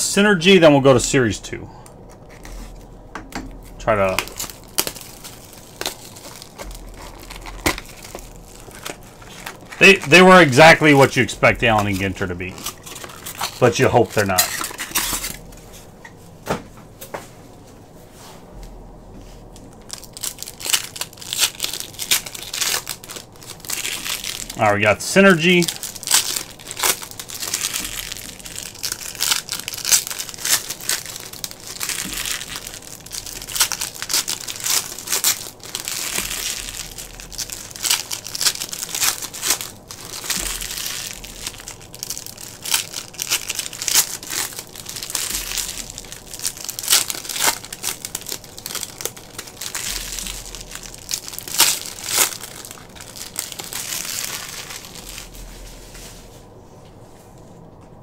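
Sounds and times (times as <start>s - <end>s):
foil wrappers crinkling: 2.0s - 15.9s, 19.4s - 56.0s.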